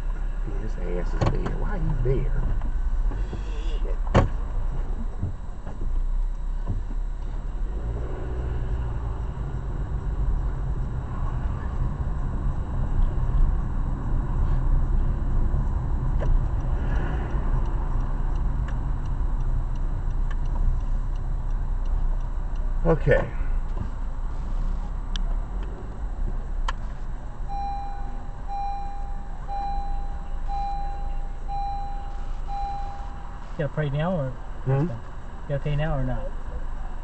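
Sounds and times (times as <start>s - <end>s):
car engine and road rumble: 0.0s - 37.0s
faint ticks: 16.1s - 24.2s.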